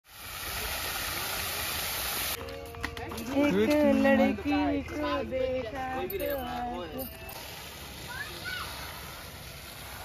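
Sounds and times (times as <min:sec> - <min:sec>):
fountain spraying into pond: 0:00.0 - 0:02.4, 0:07.3 - 0:10.0.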